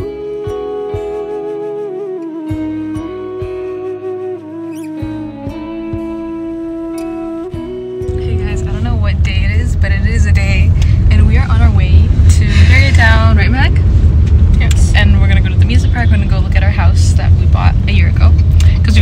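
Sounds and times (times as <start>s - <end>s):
car cabin road rumble: 8.0s - 19.0s
people talking: 8.1s - 13.8s, 14.6s - 19.0s.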